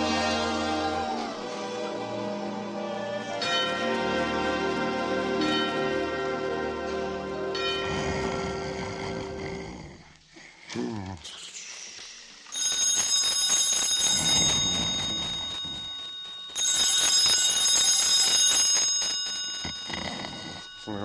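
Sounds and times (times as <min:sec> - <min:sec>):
telephone bell ringing: 0:12.5 - 0:21.0.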